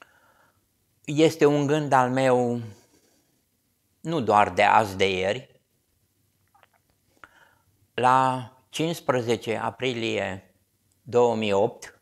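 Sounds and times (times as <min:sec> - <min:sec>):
short breath: 0:00.0 - 0:00.7, 0:07.1 - 0:07.8.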